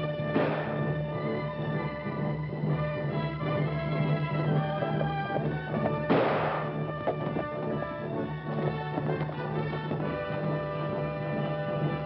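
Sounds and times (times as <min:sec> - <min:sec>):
orchestral string and brass chords: 0:00.0 - 0:12.0
loud orchestral hit: 0:06.1 - 0:06.8.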